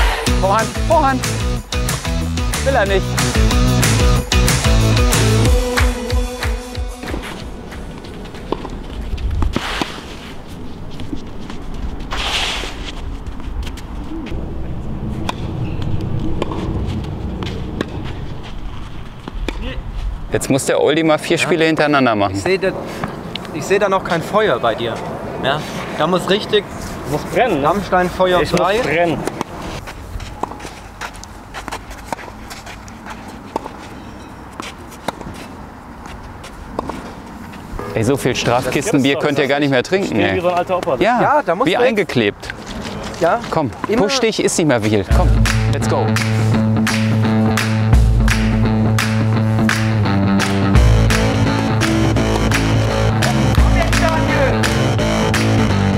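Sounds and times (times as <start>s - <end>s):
shoes sliding on clay: 7.0s - 14.4s, 28.8s - 37.7s, 42.5s - 44.2s
steady low rumble: 12.9s - 20.4s, 45.0s - 55.9s.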